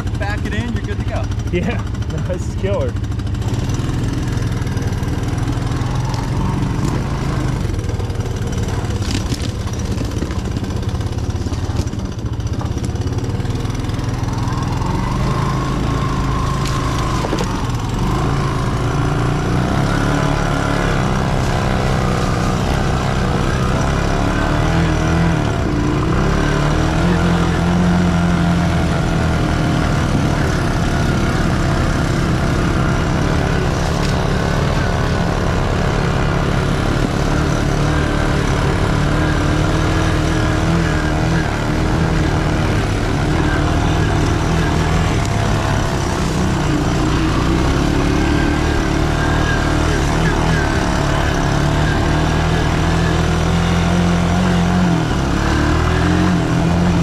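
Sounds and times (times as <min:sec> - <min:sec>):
distant atv engine: 0:00.0 - 0:57.0
three-wheeler engine running: 0:00.0 - 0:57.0.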